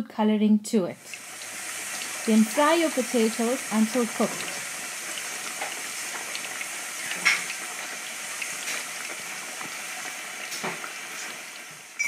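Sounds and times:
potatoes sizzling in oil: 1.0s - 12.0s.

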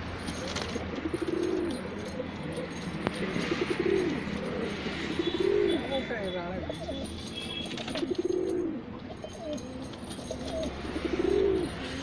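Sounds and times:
pigeons cooing: 0.3s - 6.1s, 6.7s - 12.0s.

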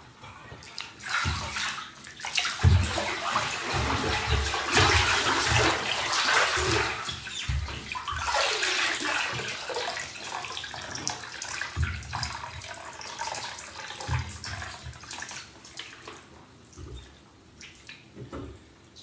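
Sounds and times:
bathwater sloshing and splashing: 0.0s - 18.8s
water streaming into tub: 0.7s - 16.1s.

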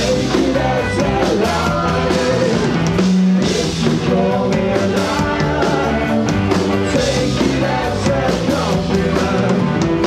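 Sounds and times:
drum kit: 0.0s - 10.0s
electric guitars: 0.0s - 10.0s
male lead vocal: 0.0s - 10.0s.

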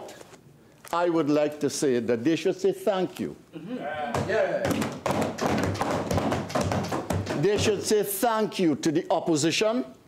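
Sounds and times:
palms drumming on wooden desks: 4.1s - 8.0s.

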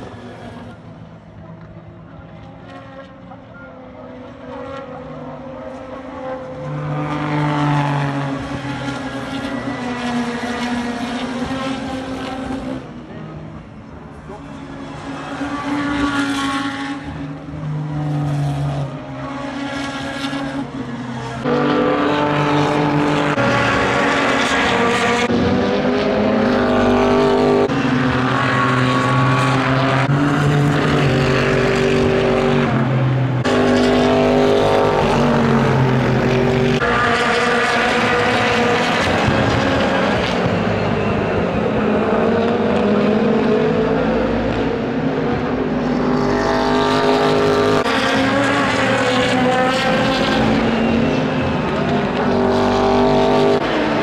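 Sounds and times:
race cars passing at speed: 0.0s - 54.0s.

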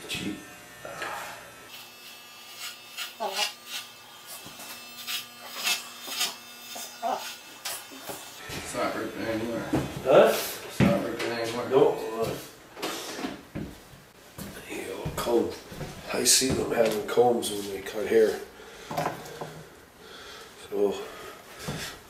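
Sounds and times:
hair clippers buzzing: 0.0s - 9.6s
person talking: 14.6s - 18.5s.

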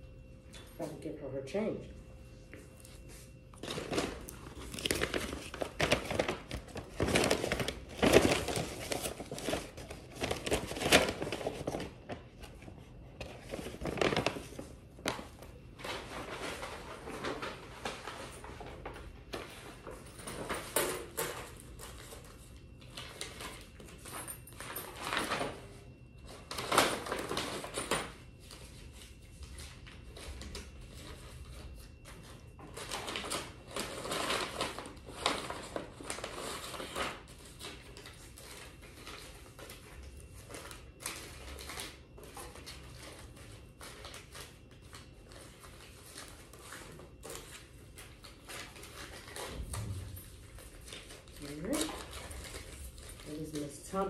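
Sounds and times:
rustling and handling noises: 1.7s - 54.0s.

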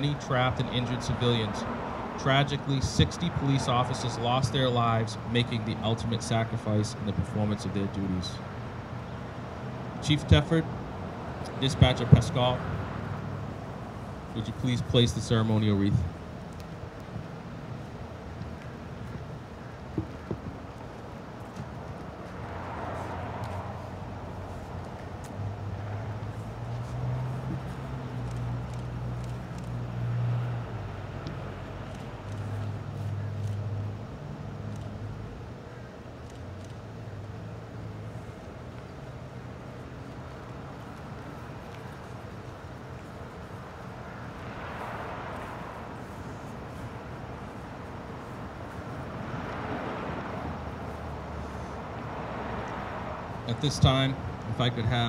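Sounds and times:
cars passing: 0.0s - 55.0s
vehicle engine hum: 0.0s - 55.0s.

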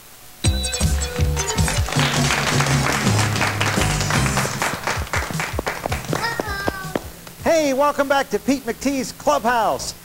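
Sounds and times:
music: 0.4s - 7.7s
children clapping: 0.8s - 7.3s.

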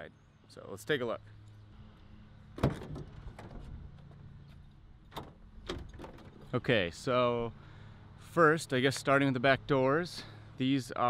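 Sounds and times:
van cargo door swinging open: 2.6s - 4.0s, 5.1s - 6.6s.

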